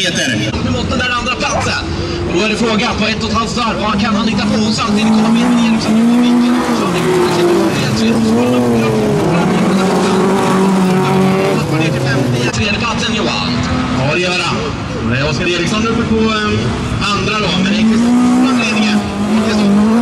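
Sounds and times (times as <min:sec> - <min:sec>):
race car engines revving: 0:00.0 - 0:20.0.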